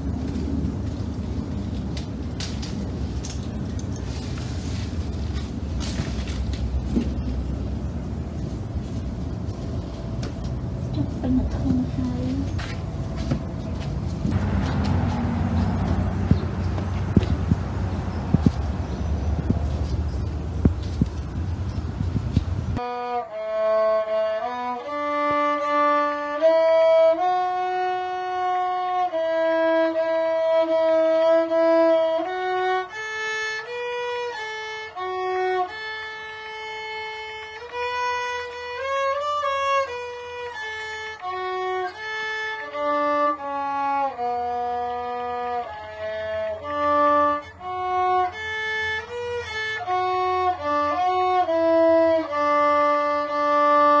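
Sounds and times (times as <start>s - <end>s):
violin playing slow melody: 22.8s - 54.0s.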